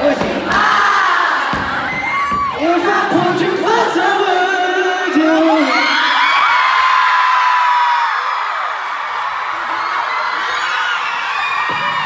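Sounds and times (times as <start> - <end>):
concert audience screaming: 0.0 - 12.0
steady crowd noise: 0.0 - 12.0.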